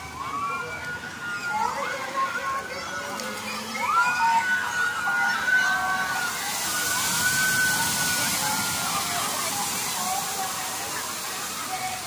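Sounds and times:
people screaming: 0.0 - 12.0
water cascade splashing into pool: 0.0 - 12.0.

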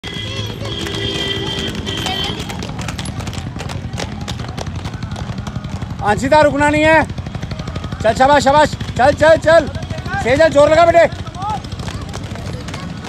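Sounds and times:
roller skates rattling on asphalt: 0.0 - 13.0.

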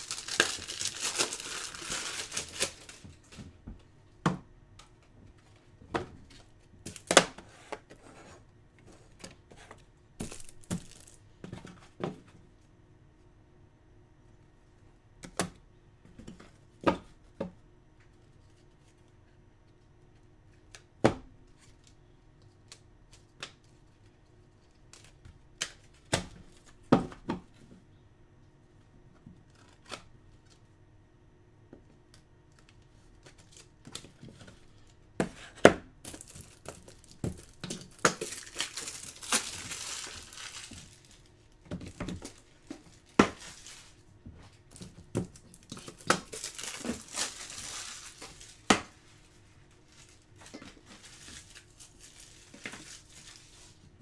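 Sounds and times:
wrapper tearing and crinkling: 0.0 - 3.1, 36.1 - 41.4, 42.1 - 44.0, 44.7 - 48.7, 49.8 - 53.8.

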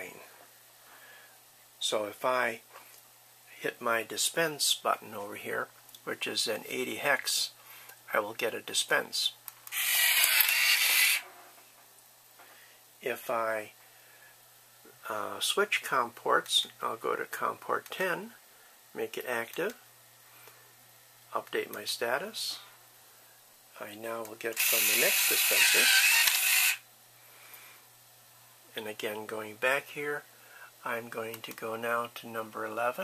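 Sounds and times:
card dispenser mechanical whir: 24.6 - 26.8.

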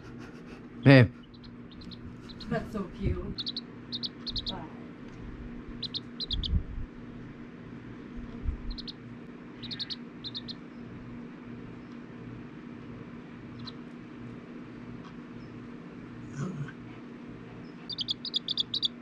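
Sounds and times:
chick peeping: 0.0 - 4.8, 5.7 - 6.8, 8.4 - 9.0, 9.6 - 10.7, 13.5 - 13.9, 17.6 - 19.0
steady low hum: 0.0 - 19.0
low thumps: 5.2 - 6.9, 8.1 - 8.9.

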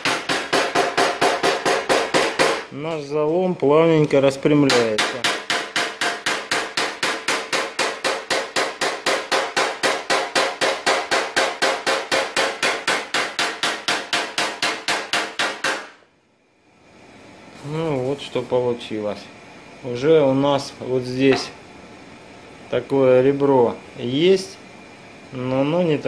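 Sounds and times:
hammer tapping on metal: 0.0 - 2.7, 4.7 - 15.9, 21.3 - 21.6.

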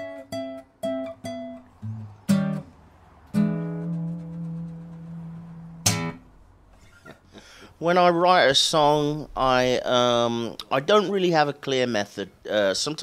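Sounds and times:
acoustic guitar fingerstyle blues: 0.0 - 7.2.

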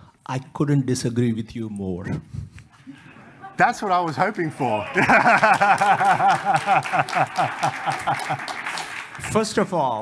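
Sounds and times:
audience clapping: 4.6 - 10.0
audience laughing: 4.7 - 8.9.

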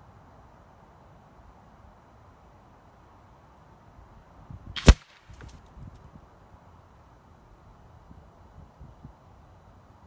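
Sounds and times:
wind rumble on microphone: 4.0 - 6.4, 7.5 - 9.6
air rifle shot crack: 4.8 - 5.5.

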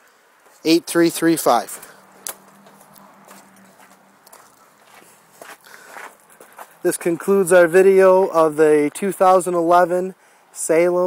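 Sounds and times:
footsteps on gravel: 2.1 - 7.5.

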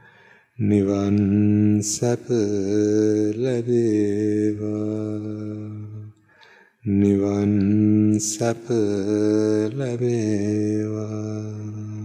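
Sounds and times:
man chanting: 0.6 - 6.2, 6.8 - 12.0.

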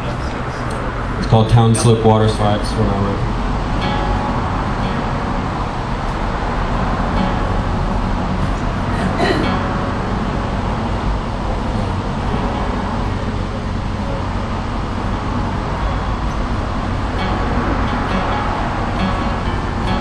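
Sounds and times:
faint voices: 0.0 - 3.7, 8.2 - 9.7
low hum: 0.0 - 20.0.

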